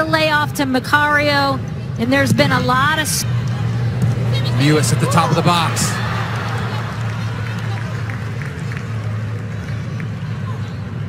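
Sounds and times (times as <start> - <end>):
stadium background hum: 0.0 - 11.0.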